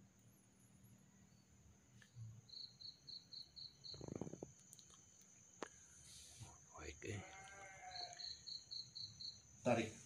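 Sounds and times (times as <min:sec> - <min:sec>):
insect chirping: 0:00.0 - 0:10.0.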